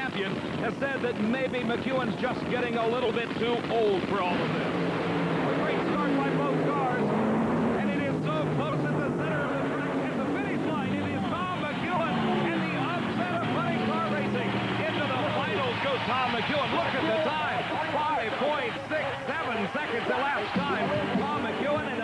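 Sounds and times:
drag racing engines at full throttle: 0.0 - 22.0.

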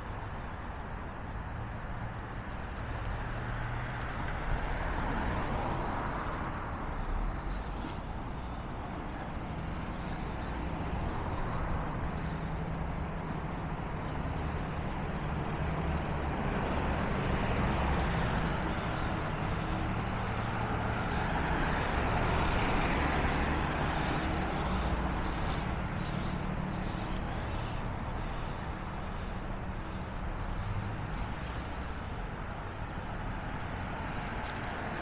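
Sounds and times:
low traffic rumble: 0.0 - 35.0
cars driving past: 2.0 - 35.0.

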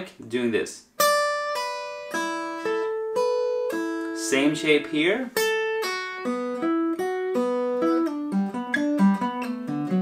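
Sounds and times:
acoustic guitar picked notes: 0.9 - 10.0.

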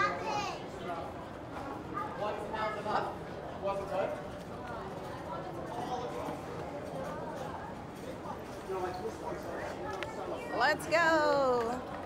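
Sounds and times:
people talking: 4.6 - 11.8.

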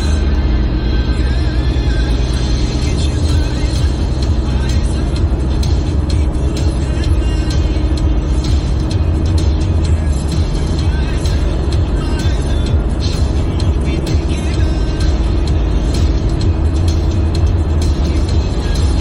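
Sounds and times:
car driving rumble inside cabin: 0.0 - 19.0
music playing: 0.0 - 19.0.

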